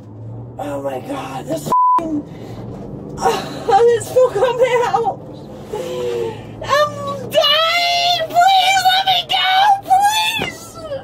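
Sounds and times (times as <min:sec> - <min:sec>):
censor bleep: 0:01.7 - 0:02.0
woman speaking: 0:03.2 - 0:05.2.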